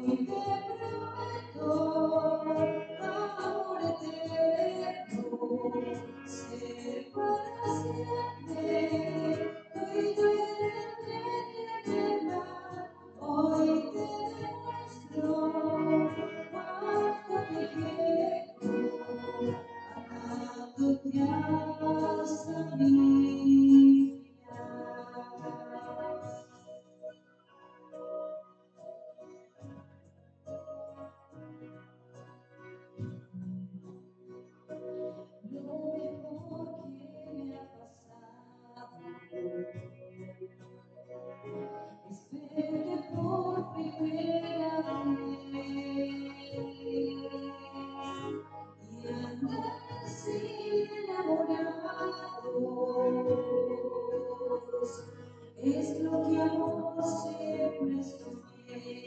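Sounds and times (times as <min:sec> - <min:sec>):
woman singing a hymn: 0:00.0 - 0:26.8, 0:35.4 - 0:39.5, 0:42.0 - 0:59.0.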